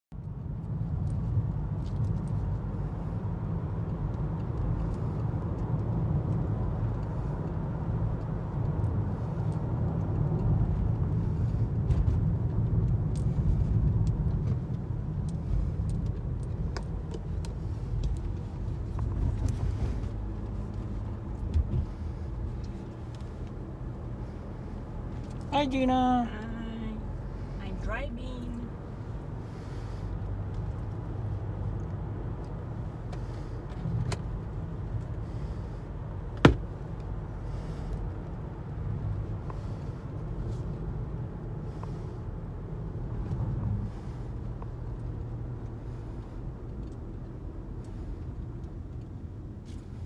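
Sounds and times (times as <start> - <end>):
car interior road noise: 0.1 - 50.0.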